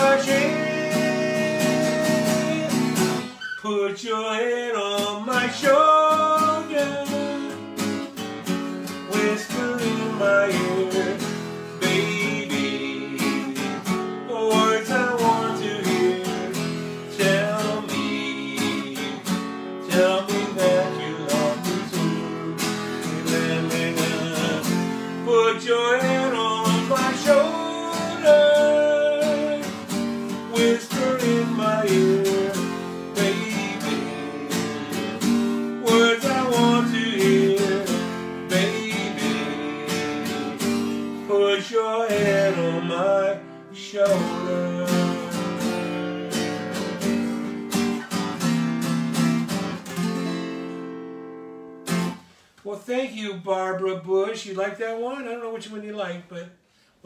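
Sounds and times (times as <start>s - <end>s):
acoustic guitar strumming: 0.0s - 52.6s.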